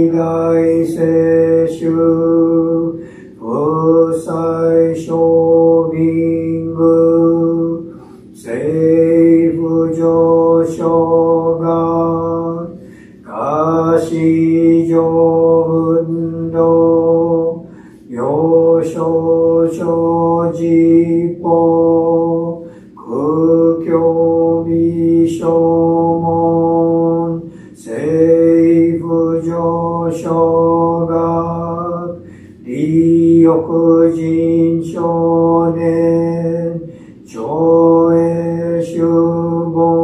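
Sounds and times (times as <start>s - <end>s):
man chanting on one pitch: 0.0s - 40.0s
man breathing: 2.9s - 3.4s, 7.9s - 8.4s, 12.7s - 13.3s, 17.6s - 18.1s, 22.6s - 23.1s, 27.4s - 27.8s, 32.2s - 32.7s, 36.8s - 37.3s.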